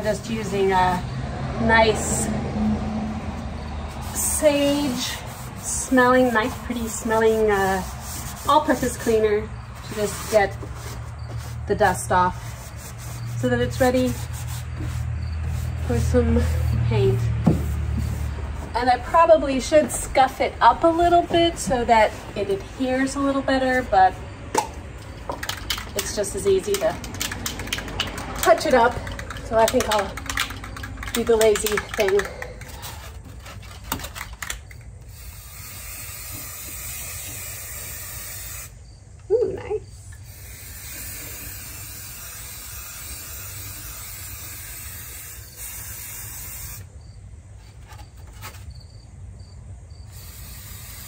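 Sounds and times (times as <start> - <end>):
woman speaking: 0.0 - 2.4, 4.2 - 10.6, 11.7 - 12.5, 13.4 - 14.3, 15.8 - 17.4, 18.7 - 24.2, 25.9 - 27.0, 28.4 - 30.2, 31.1 - 32.5, 39.3 - 40.2
small objects clicking and tapping: 24.6 - 32.9
spray can hissing: 35.1 - 38.8, 40.2 - 46.9, 50.1 - 51.0.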